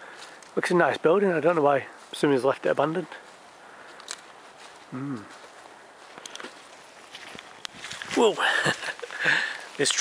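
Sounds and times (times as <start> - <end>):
footsteps on mud: 0.0 - 10.0.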